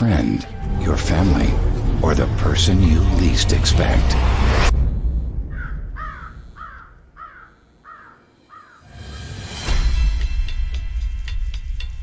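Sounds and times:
deep trailer sound effect: 0.4 - 7.2
faint bird calls: 5.5 - 9.3.

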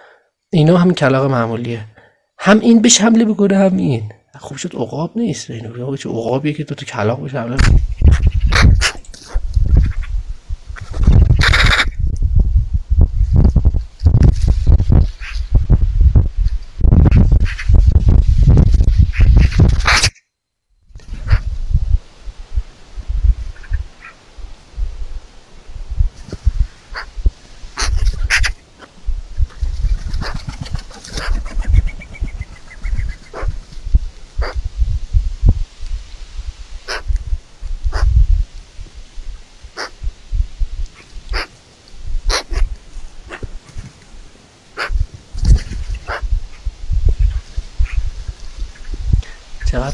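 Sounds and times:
wind rumbling on microphone: 7.5 - 20.1, 20.9 - 49.9
magpies calling harshly: 7.7 - 9.0, 11.4 - 12.0, 26.9 - 27.2, 27.8 - 28.6, 30.2 - 33.6, 34.4 - 34.6, 36.8 - 37.1, 39.8 - 40.0, 41.0 - 41.5, 42.3 - 43.4, 44.8 - 45.0, 46.0 - 46.7.

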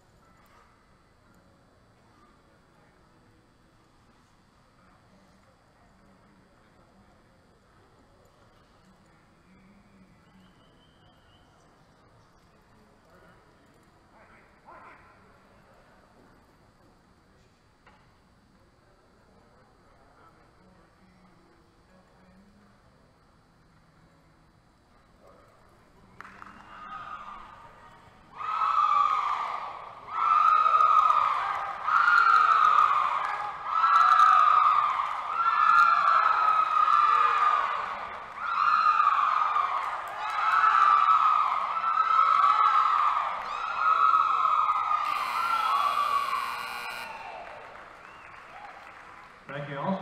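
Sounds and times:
wailing siren tone: 45.0 - 47.5.

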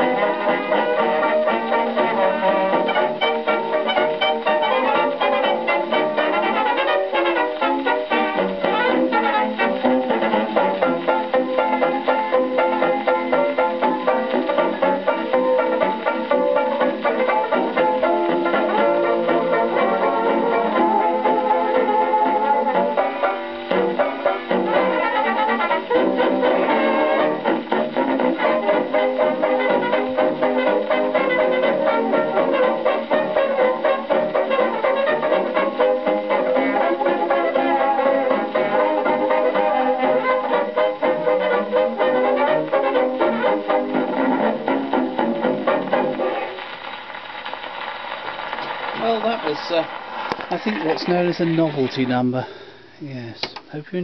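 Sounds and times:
dance-band music on gramophone: 0.0 - 53.8.

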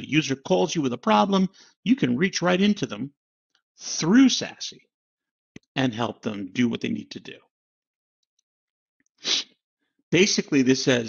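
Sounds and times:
man's stifled sneeze-like huff: 9.2 - 9.5.

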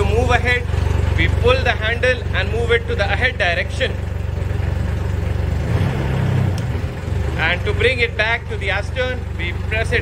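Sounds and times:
diesel engine throbbing: 0.0 - 10.0.

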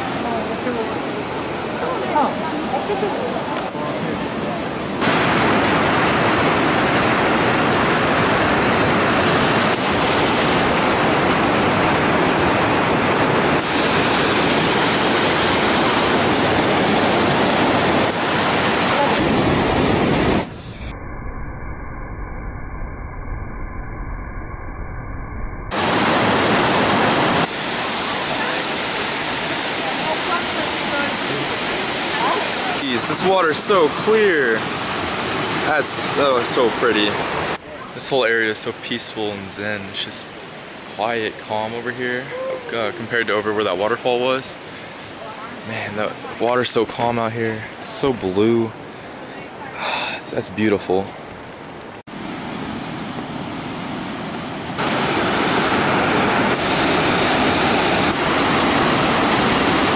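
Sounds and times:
waterfall rushing: 0.0 - 20.6, 25.7 - 38.8, 52.1 - 59.9.

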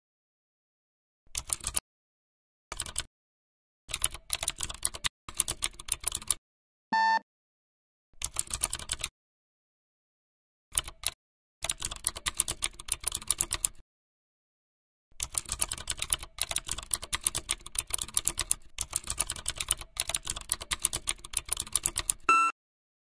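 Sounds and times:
computer keyboard typing: 1.3 - 1.8, 2.7 - 3.1, 3.9 - 6.4, 8.2 - 9.1, 10.7 - 13.8, 15.2 - 22.5
short loud beep: 7.0 - 7.2, 22.3 - 22.6.

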